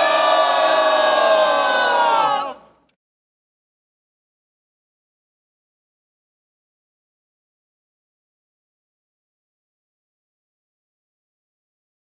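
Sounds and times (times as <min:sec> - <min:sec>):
group cheering: 0:00.0 - 0:02.8.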